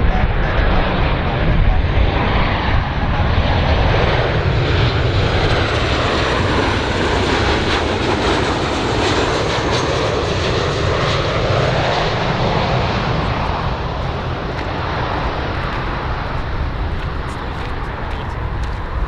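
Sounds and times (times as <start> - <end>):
jet airliner flying by: 0.0 - 19.0.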